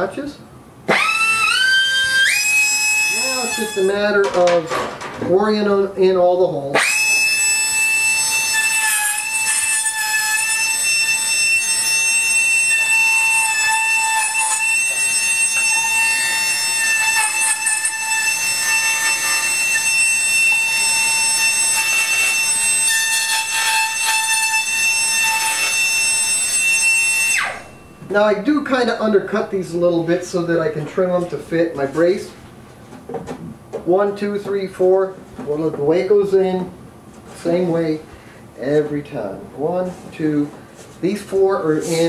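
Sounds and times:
rotary tool whining: 0:00.9 - 0:04.1, 0:06.8 - 0:28.0.

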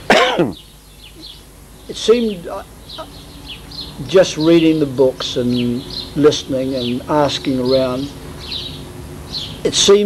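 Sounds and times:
man coughing: 0:00.0 - 0:00.6
faint chirps: 0:00.0 - 0:10.0.

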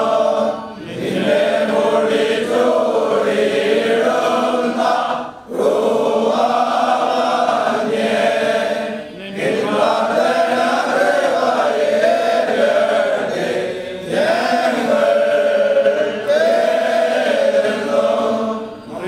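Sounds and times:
group chanting a hymn: 0:00.0 - 0:19.0.

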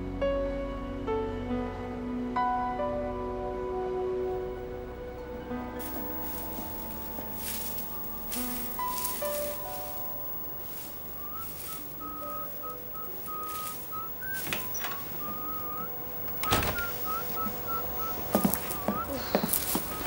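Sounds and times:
soft background music: 0:00.0 - 0:20.0
person whistling a tune: 0:08.6 - 0:20.0.

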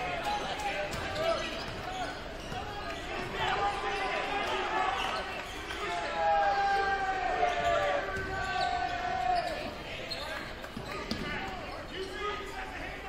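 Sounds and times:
crowd chatter: 0:00.0 - 0:13.0
sneakers squeaking on court: 0:00.2 - 0:04.2, 0:07.5 - 0:12.5.

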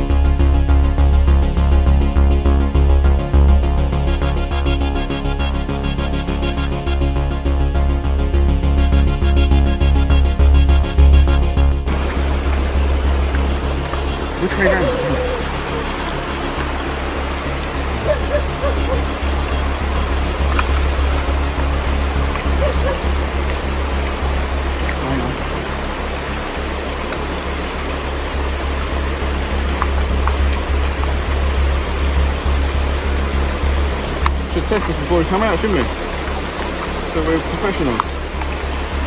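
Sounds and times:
rocky stream running: 0:11.9 - 0:39.0.

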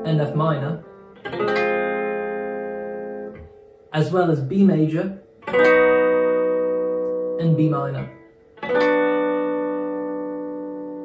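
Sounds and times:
electric guitar chord strum: 0:00.0 - 0:03.6, 0:05.4 - 0:11.0
guitar chord damped: 0:00.0 - 0:03.9, 0:05.3 - 0:11.0.

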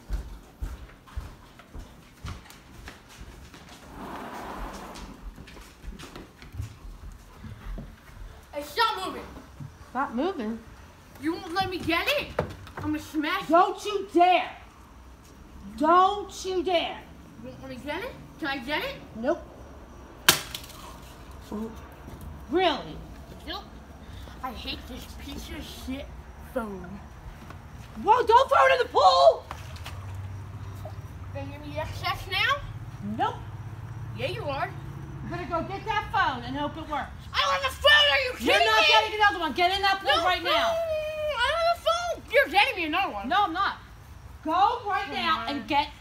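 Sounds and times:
footsteps on hard floor: 0:00.0 - 0:03.8, 0:05.1 - 0:08.4
phone cracking on concrete: 0:20.2 - 0:21.0.

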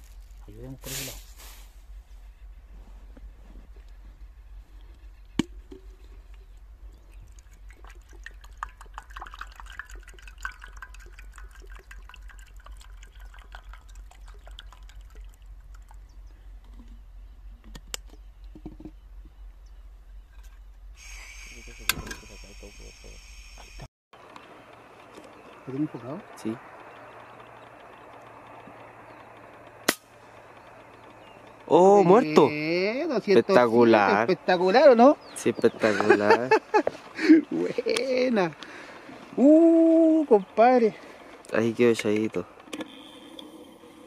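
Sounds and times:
camp stove hum: 0:00.0 - 0:44.0
water boiling with crackling pops: 0:07.1 - 0:15.8.

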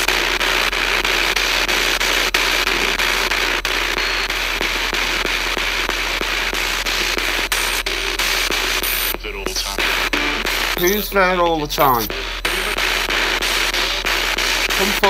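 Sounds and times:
radio static: 0:00.0 - 0:15.0
rapid radio scanner clicks: 0:00.0 - 0:15.0
steady low hum: 0:05.7 - 0:15.0.

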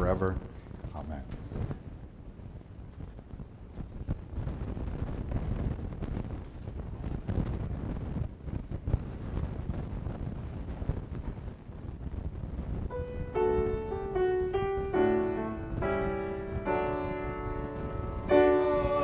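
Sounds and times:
piano note: 0:12.9 - 0:19.0.

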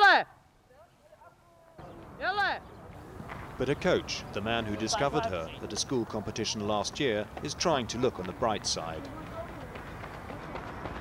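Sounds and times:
outdoor background noise: 0:00.0 - 0:11.0
faint voices: 0:00.7 - 0:11.0
running footsteps on track: 0:02.8 - 0:11.0.

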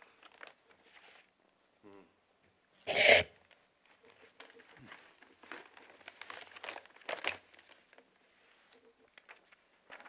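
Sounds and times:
paper rustling and crinkling: 0:00.1 - 0:01.3, 0:03.4 - 0:10.0.

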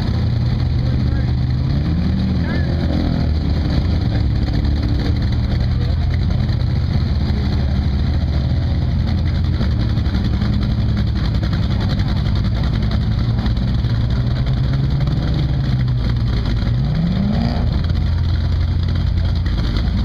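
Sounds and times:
buggy engine running at low revs: 0:00.0 - 0:20.0.

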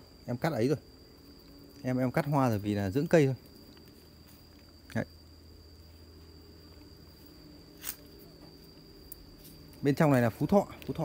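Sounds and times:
high-pitched insect drone: 0:00.0 - 0:11.0.

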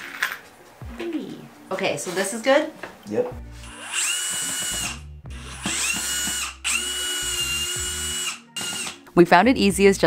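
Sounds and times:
cordless drill whining: 0:03.6 - 0:09.0.

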